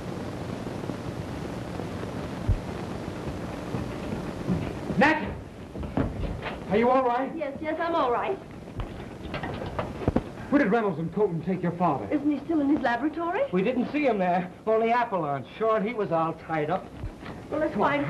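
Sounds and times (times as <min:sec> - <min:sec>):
steady rushing hiss: 0:00.0 - 0:18.0.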